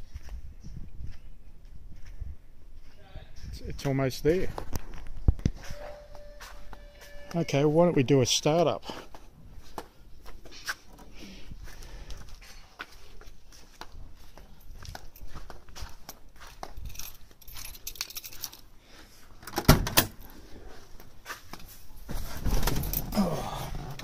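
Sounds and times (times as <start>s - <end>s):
keys jingling: 16.8s - 18.7s.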